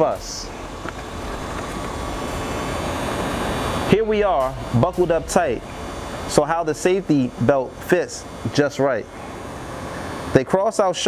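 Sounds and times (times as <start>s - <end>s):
mechanical rushing noise: 0.0s - 10.4s.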